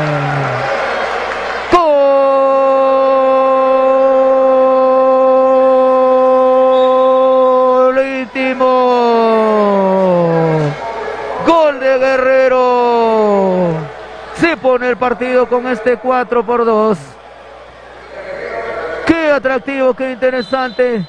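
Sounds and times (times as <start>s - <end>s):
commentator shouting goal: 11.4s - 17.2s.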